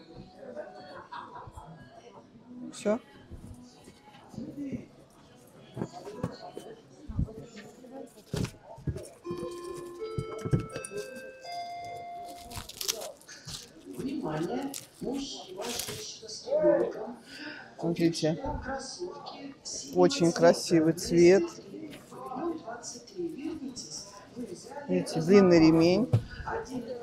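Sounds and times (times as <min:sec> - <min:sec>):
handling clicks and rustles: 0:08.2 - 0:16.1.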